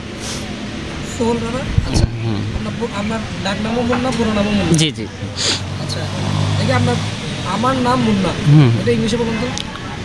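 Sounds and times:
road traffic passing: 0.0s - 10.0s
person speaking: 8.4s - 9.0s.

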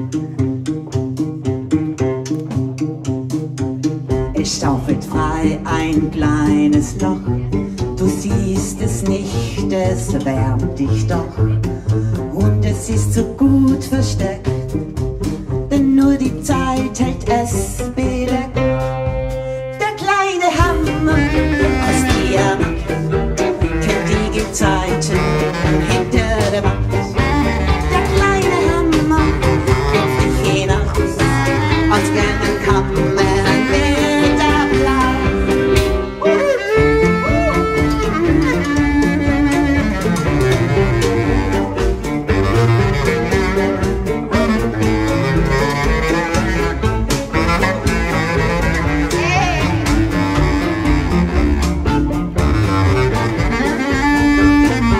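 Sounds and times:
bowed cello: 0.0s - 19.8s, 20.4s - 54.9s
bass clarinet: 0.0s - 54.9s
double bass: 0.0s - 54.9s
drums: 0.0s - 54.9s
live band playing swing: 0.0s - 54.9s
accordion: 20.6s - 54.9s.

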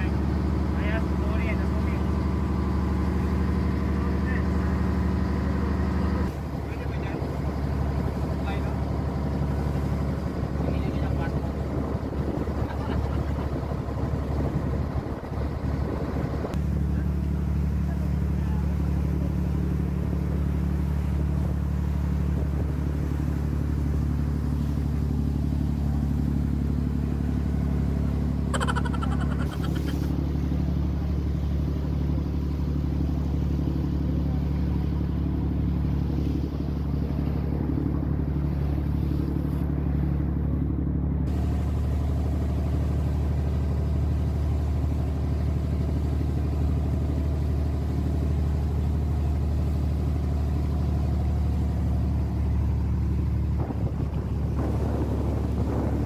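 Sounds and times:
boat engine droning: 0.0s - 56.0s
water rushing along hull: 0.0s - 56.0s.

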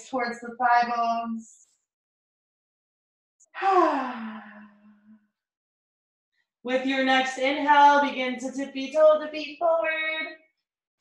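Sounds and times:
woman sighing: 3.6s - 4.8s.

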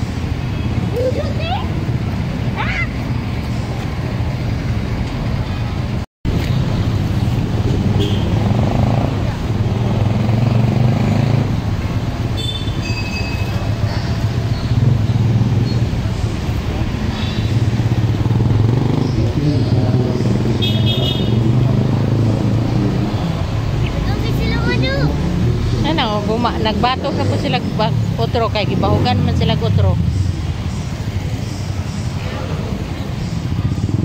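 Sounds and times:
vehicle engines passing: 0.0s - 34.0s.

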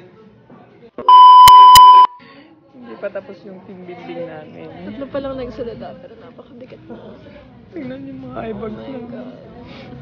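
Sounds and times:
electronic beep: 1.1s - 2.2s.

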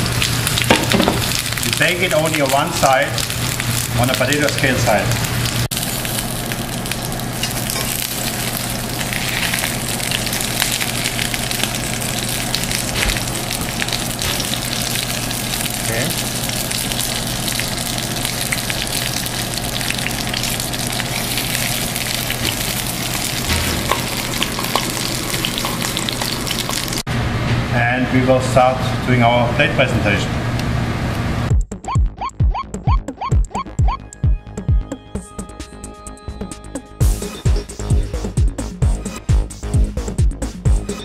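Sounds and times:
fish frying in butter sizzling: 0.0s - 27.1s.

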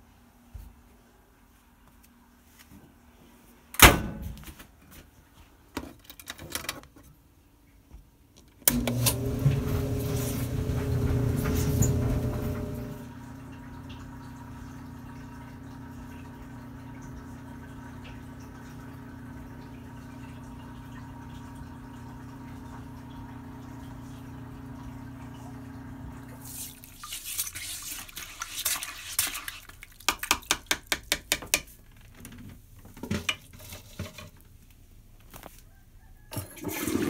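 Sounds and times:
clothes dryer humming: 8.6s - 28.6s, 36.3s - 37.0s
toilet brush scrubbing bowl: 9.4s - 13.0s, 26.3s - 31.0s, 33.1s - 34.4s.

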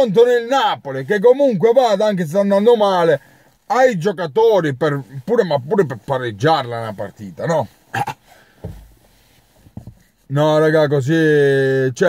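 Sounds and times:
soft low thumps: 8.6s - 10.2s.

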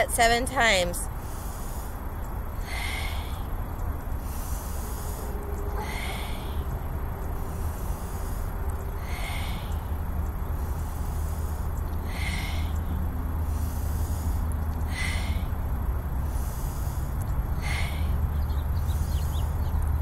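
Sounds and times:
steady low rumble: 0.0s - 20.0s
woman breathing deeply: 1.1s - 19.6s.

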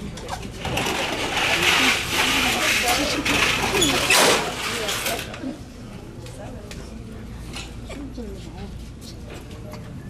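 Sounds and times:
folding tables scraping and rattling: 0.2s - 5.4s.

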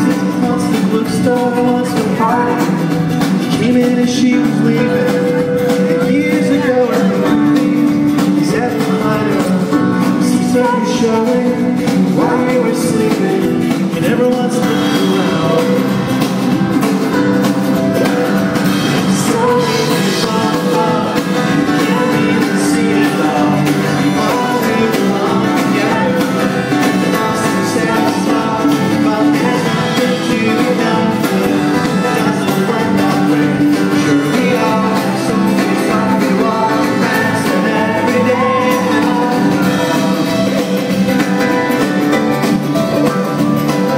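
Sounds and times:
drum kit: 0.0s - 43.9s
electric guitar: 0.0s - 43.9s
grand piano: 0.0s - 43.9s
woman singing: 19.2s - 40.9s.

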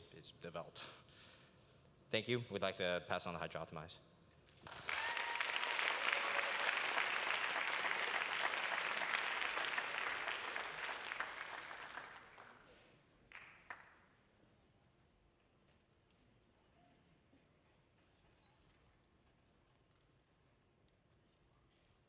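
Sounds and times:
audience applauding: 4.6s - 13.9s.

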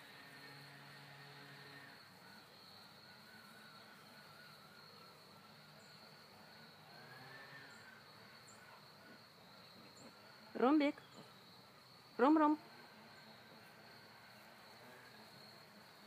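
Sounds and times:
high-pitched insect chorus: 0.0s - 16.0s.

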